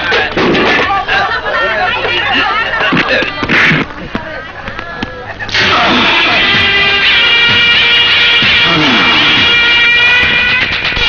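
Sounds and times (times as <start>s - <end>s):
voice wailing: 5.5s - 6.6s, 8.6s - 9.6s
film score with high held notes: 5.5s - 11.0s.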